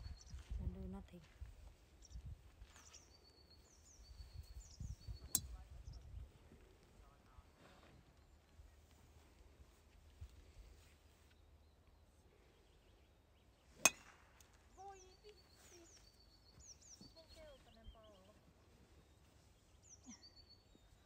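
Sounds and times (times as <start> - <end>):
birds chirping: 2.0 - 8.8, 11.2 - 14.0, 14.7 - 21.0
golf club striking ball: 13.8 - 14.4.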